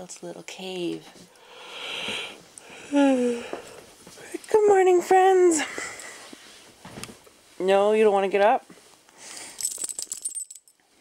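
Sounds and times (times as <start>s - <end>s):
dog tags jingling: 9.4s - 10.8s.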